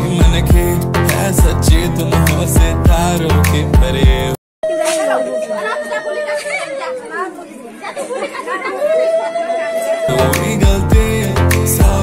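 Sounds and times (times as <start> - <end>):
crowd talking: 4.7 - 10.6.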